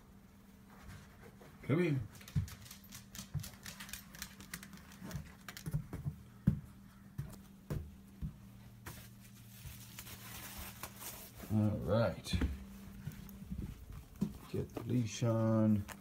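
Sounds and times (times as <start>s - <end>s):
dog claws clicking on tile: 2.1s - 6.1s
soft footsteps: 4.9s - 16.0s.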